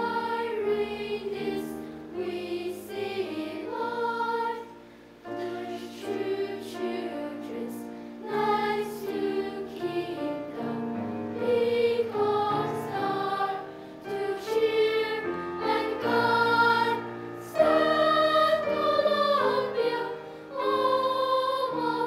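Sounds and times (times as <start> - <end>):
children's choir singing: 0.0 - 22.0
grand piano accompaniment: 0.0 - 22.0.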